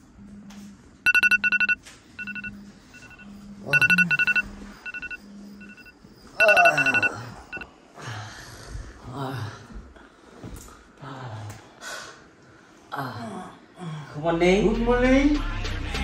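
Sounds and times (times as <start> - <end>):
phone vibrating against bed: 1.1 - 7.6
two-tone alarm beeps: 1.1 - 7.6.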